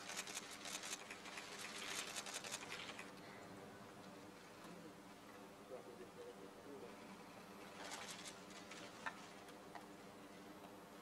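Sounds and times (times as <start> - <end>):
camera shutter clicks: 0.0 - 3.1.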